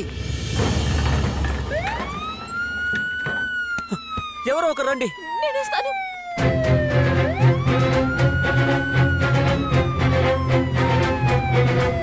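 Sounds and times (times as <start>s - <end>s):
ambulance siren wailing: 1.5s - 12.0s.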